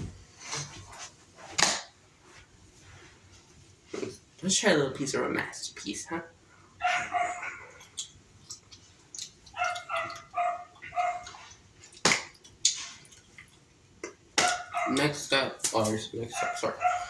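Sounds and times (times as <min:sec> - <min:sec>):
dog barking high-pitched: 0:06.8 - 0:07.8, 0:09.5 - 0:11.3, 0:14.4 - 0:15.1, 0:16.3 - 0:17.0.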